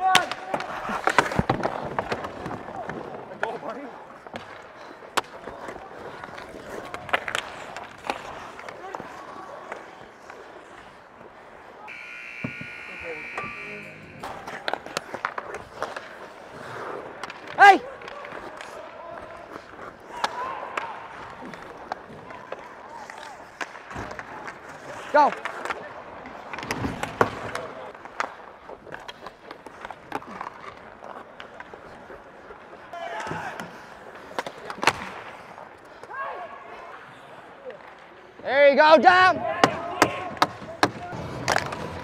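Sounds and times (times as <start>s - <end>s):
clacks of sticks and puck: 0.0s - 11.6s, 14.2s - 36.2s, 37.7s - 42.0s
skates scraping ice: 0.0s - 42.0s
players shouting: 11.8s - 15.1s, 17.5s - 23.4s, 38.5s - 41.3s.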